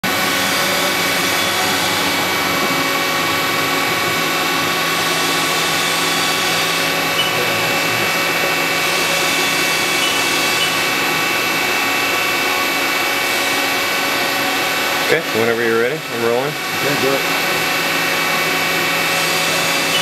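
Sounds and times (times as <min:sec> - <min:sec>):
machine spindle whine: 0:00.0 - 0:20.0.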